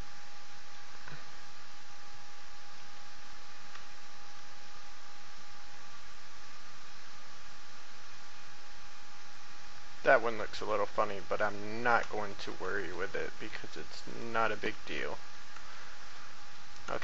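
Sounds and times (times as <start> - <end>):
microphone hiss: 0.0 - 17.0.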